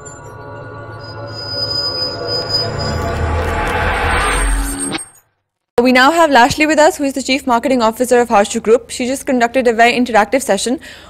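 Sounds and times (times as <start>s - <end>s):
low rumble: 0.0s - 5.2s
sustained high electronic whine: 0.0s - 5.3s.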